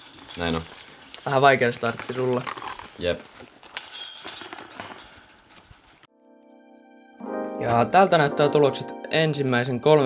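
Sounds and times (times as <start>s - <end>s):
footsteps on dry leaves: 0.0s - 3.8s
light jingling: 0.0s - 6.1s
soft piano music: 6.1s - 10.0s.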